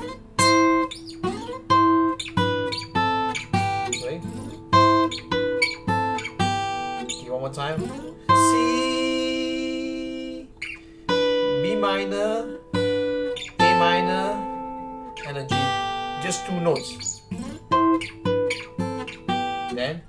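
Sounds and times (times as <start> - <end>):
fingerpicked acoustic guitar: 0.0 - 20.0.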